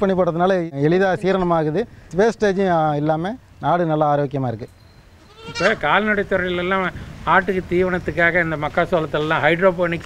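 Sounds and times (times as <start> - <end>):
goats bleating: 5.2 - 6.1.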